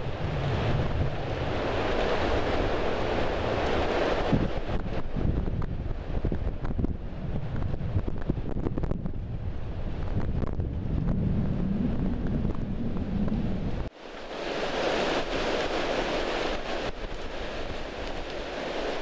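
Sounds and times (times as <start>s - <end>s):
wind buffeting microphone: 0.0s - 19.0s
small clicks and rustles: 16.9s - 19.0s.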